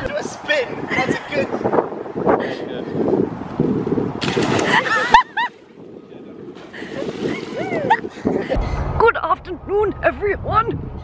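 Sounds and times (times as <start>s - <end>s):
loud water splash: 4.2s - 5.2s.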